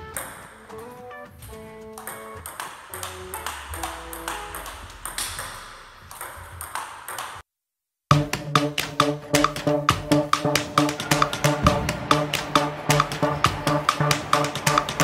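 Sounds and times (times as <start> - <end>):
background music: 0.0 - 6.2, 8.1 - 15.0
table tennis ball clicking: 0.1 - 1.0, 1.9 - 7.4, 8.2 - 15.0.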